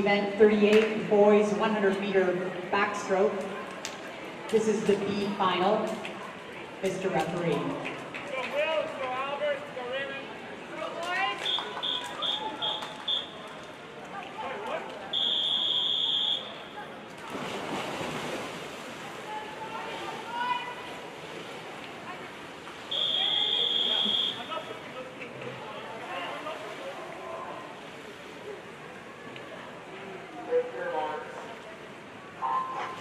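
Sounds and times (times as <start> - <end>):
crowd chatter: 0.0 - 33.0
swimmers splashing: 2.3 - 33.0
referee's whistle blasts: 11.4 - 13.4, 15.1 - 16.6, 22.9 - 24.6.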